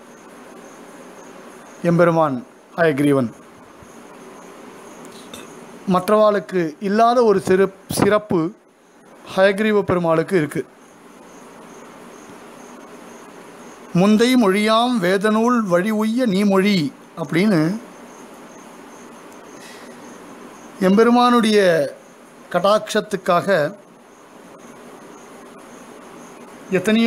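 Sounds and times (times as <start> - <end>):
background hiss: 0.0 - 27.0
high-pitched insect-like chirp: 0.0 - 27.0
man talking: 1.8 - 3.4, 5.9 - 8.6, 9.3 - 10.7, 13.9 - 17.8, 20.8 - 23.8, 26.7 - 27.0.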